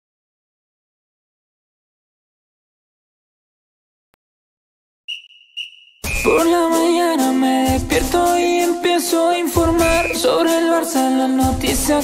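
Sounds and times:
short high-pitched tones: 5.1s - 6.6s.

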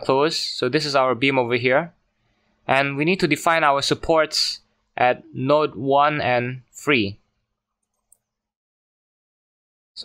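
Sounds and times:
computer mouse click: 7.8s - 8.3s.

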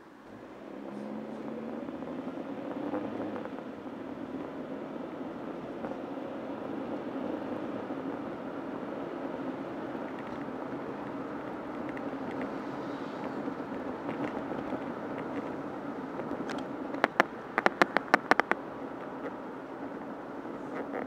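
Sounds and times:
car driving road noise: 0.0s - 21.0s
sharp clicks or rattles: 16.2s - 18.6s.

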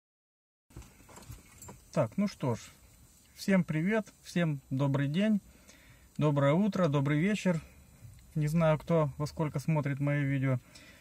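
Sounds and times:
faint clicks and rustles in car: 0.7s - 3.4s
man talking: 1.9s - 5.4s, 6.2s - 10.7s.

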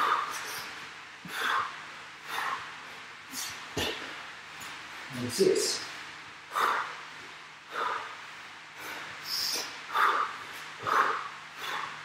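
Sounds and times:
man breathing hard: 0.0s - 4.1s, 6.5s - 12.0s.

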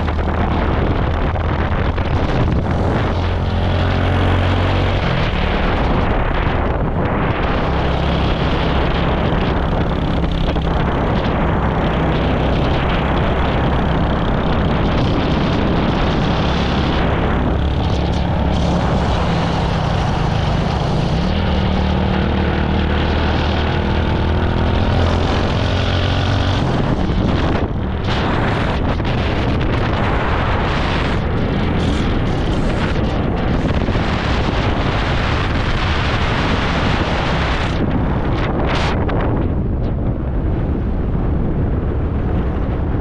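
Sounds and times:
small motorcycle engine running: 0.0s - 39.3s
wind rushing over microphone: 0.0s - 43.0s.

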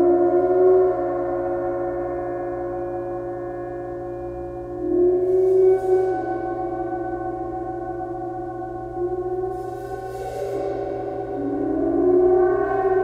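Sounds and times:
gong humming under mallet: 0.0s - 13.0s.

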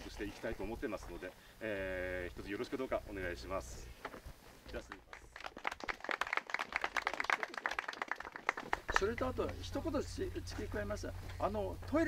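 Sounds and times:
small group clapping: 4.8s - 9.6s.

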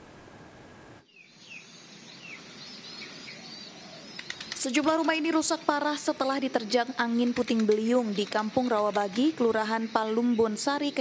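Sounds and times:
low steady hiss: 0.0s - 11.0s.

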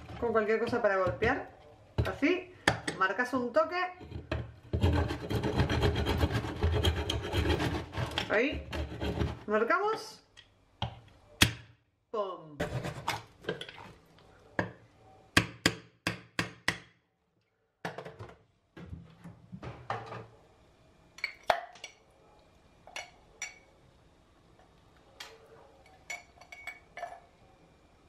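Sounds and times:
ice clinking in glass: 25.9s - 27.3s.

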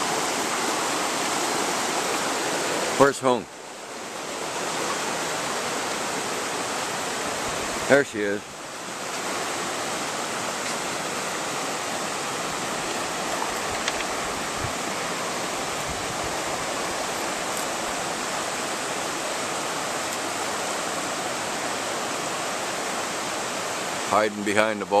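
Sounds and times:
river rushing over stones: 0.0s - 25.0s.

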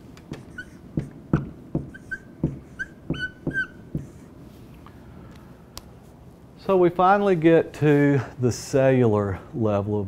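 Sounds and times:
marker squeaking on whiteboard: 0.2s - 4.4s.

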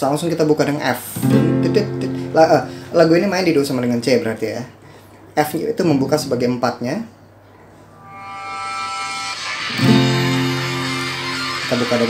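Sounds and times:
acoustic guitar strumming chord: 1.2s - 3.0s, 8.0s - 12.0s
bright ringing music: 8.0s - 12.0s.

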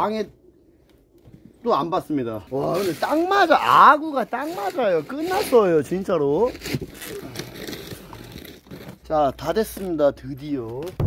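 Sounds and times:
tape crinkling and rustling: 2.6s - 11.0s.

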